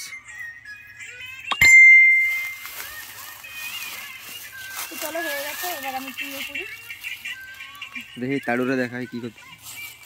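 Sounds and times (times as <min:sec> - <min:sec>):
bell-like ding: 0:01.5 - 0:02.7.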